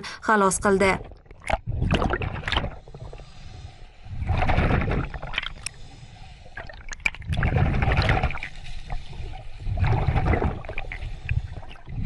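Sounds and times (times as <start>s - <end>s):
water sloshing and splashing: 0.7s - 12.0s.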